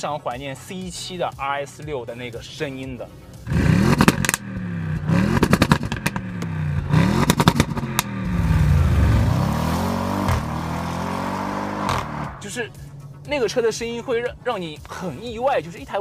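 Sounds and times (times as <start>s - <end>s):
car engine revving: 3.0s - 15.8s
exhaust crackles and pops: 3.5s - 11.0s.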